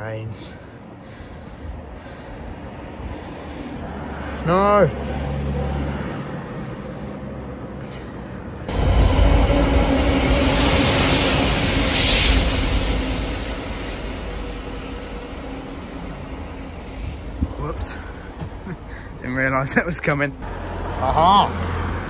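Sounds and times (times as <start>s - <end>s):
diesel locomotive engine drone: 0.0s - 22.0s
train wheels rolling: 8.7s - 19.1s.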